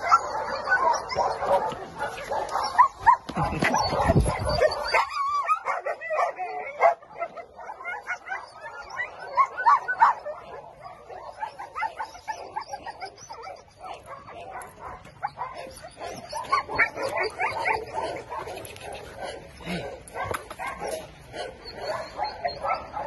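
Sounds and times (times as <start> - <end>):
dog high calls: 0.0 - 23.0
dog whining: 2.6 - 6.8, 15.3 - 18.2.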